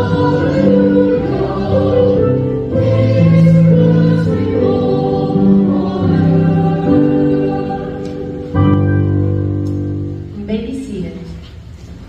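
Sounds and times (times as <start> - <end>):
congregation and choir singing hymn: 0.0 - 10.0.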